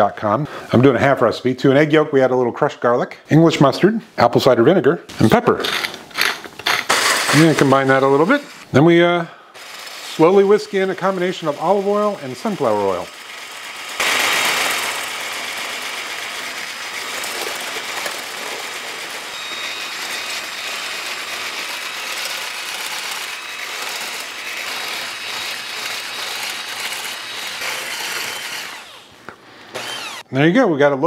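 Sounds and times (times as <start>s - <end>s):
electric whisk whirring in a bowl: 9.6s - 29.1s, 29.7s - 30.2s.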